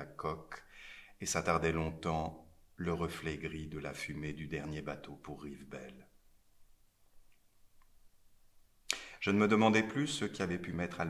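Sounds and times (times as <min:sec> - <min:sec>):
sharp intake of breath: 0:00.7 - 0:01.2, 0:08.9 - 0:09.2.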